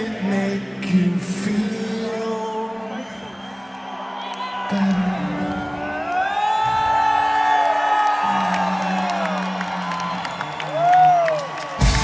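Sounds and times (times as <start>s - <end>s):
crowd cheering and whooping: 2.5s - 12.0s.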